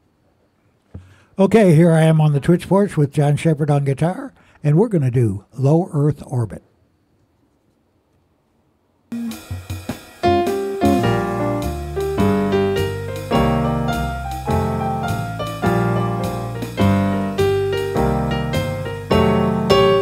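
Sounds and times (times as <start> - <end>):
digital piano jazz-blues tune: 9.1 - 20.0.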